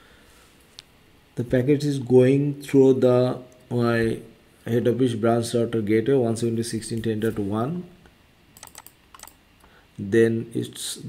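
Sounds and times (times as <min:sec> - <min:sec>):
computer keyboard clicks: 0:08.6 - 0:09.4.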